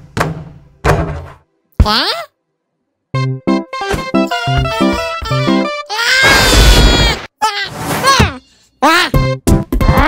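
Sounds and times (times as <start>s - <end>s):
cartoon voice cry: 4.3s - 9.2s.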